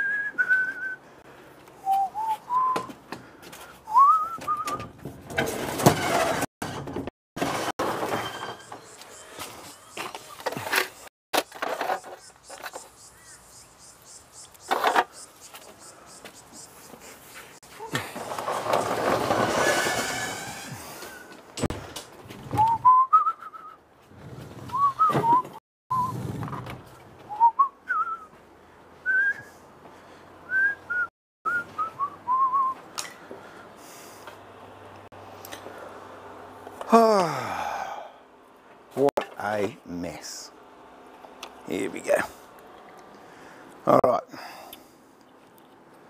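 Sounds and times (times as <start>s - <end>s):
person whistling rising notes: 0.0s - 1.0s, 1.8s - 2.9s, 3.9s - 4.8s, 22.6s - 23.8s, 24.7s - 26.1s, 27.3s - 28.3s, 29.0s - 29.6s, 30.5s - 32.8s
falling squeal: 8.0s - 9.9s, 18.2s - 21.3s.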